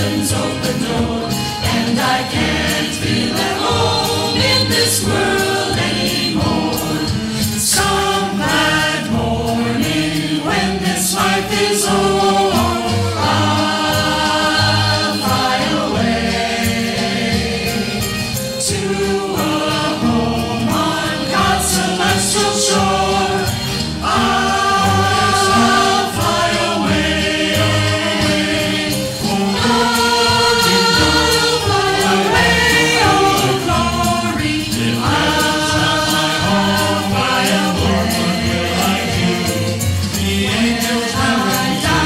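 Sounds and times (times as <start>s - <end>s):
church choir singing: 0.0s - 42.0s.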